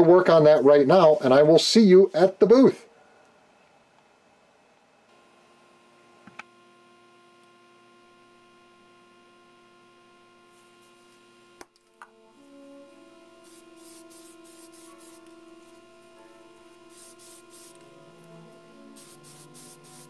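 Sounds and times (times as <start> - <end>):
soft background music: 12.0 - 20.0
spray paint can hissing: 13.4 - 15.8, 16.6 - 18.3, 18.9 - 20.0.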